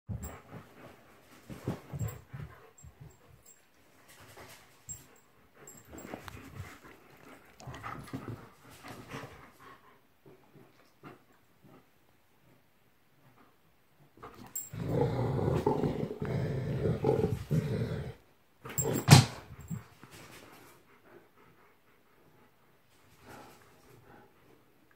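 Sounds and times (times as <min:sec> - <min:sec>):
dogs playing and vocalizing: 0:00.1 - 0:12.6, 0:13.3 - 0:24.8.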